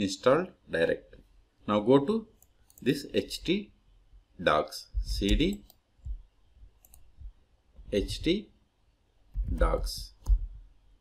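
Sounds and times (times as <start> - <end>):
computer mouse clicks: 2.4 - 3.0, 5.1 - 6.2, 6.8 - 7.1.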